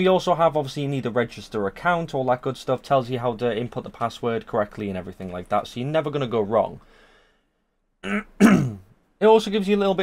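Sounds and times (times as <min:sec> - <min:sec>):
man clearing his throat: 0:08.0 - 0:08.9.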